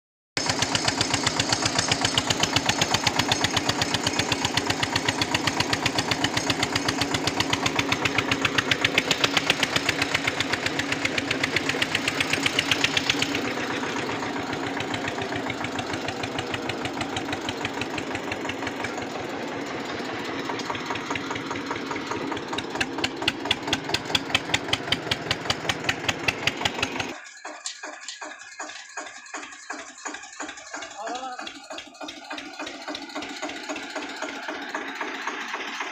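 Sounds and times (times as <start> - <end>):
tractor diesel engine running: 0.4 - 35.9.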